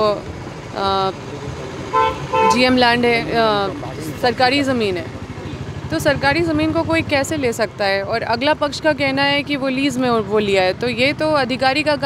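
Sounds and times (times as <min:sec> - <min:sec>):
road traffic rumble: 0:00.0 - 0:12.0
vehicle horn toot: 0:01.9 - 0:02.8.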